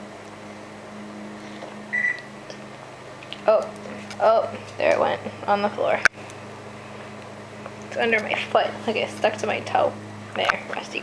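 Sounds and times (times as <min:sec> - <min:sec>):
microwave oven humming: 0:00.0 - 0:11.0
short high-pitched beep: 0:01.9 - 0:02.3.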